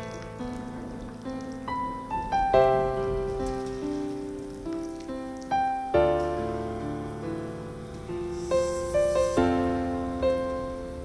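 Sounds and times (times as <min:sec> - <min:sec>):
faint rain: 0:00.0 - 0:11.0
piano chords ringing: 0:00.0 - 0:11.0.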